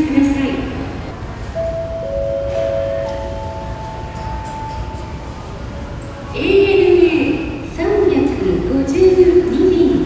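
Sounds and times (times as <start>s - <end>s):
low hum of terminal hall: 0.0s - 10.0s
three-note public address chime: 1.5s - 6.0s.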